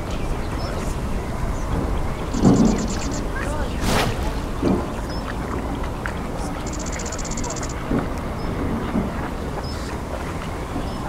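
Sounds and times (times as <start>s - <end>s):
bird chirps: 0.0s - 3.8s, 6.6s - 7.8s
low rumble and hiss: 0.0s - 11.0s.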